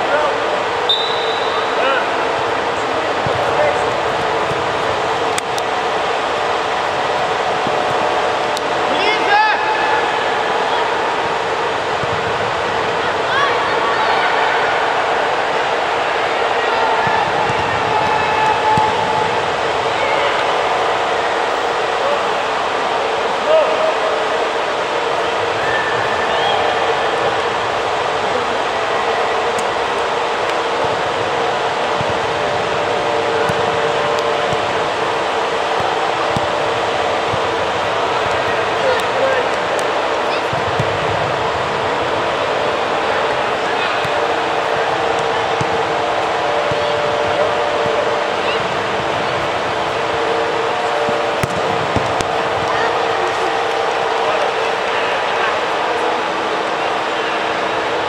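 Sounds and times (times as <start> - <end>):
steady hum: 0.0 - 58.0
distant shouts of people: 5.0 - 12.0, 12.8 - 58.0.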